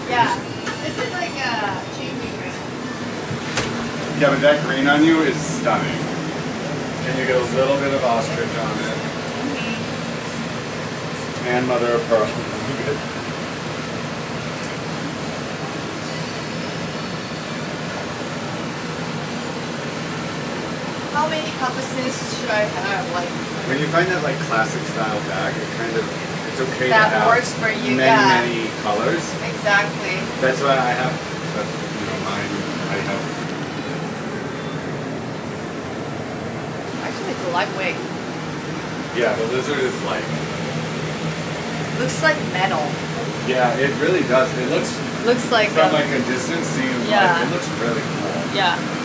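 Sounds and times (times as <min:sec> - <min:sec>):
air conditioning hum: 0:00.0 - 0:49.0.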